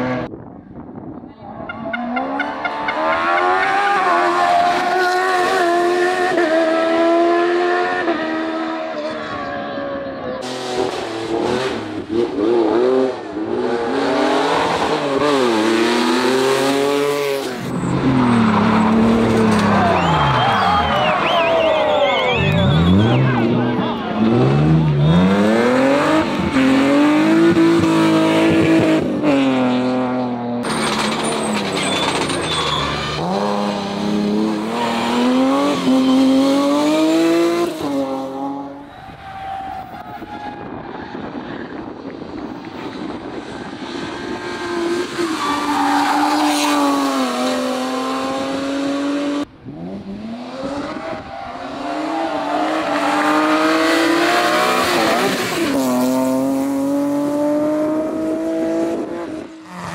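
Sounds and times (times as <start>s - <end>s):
race car engines revving: 1.4s - 59.9s
tyre squeal: 30.6s - 33.9s, 34.6s - 36.8s.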